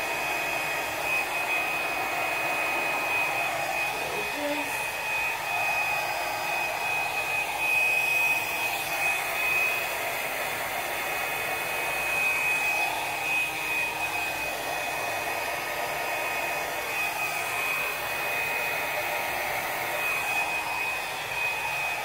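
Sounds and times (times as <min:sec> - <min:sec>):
hair dryer running: 0:00.0 - 0:22.0.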